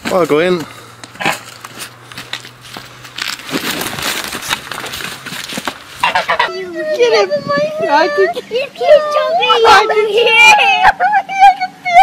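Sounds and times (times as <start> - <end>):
goose wings beating: 0.0 - 6.6
goose honking: 1.1 - 1.6, 5.8 - 7.0
woman crying: 6.5 - 12.0.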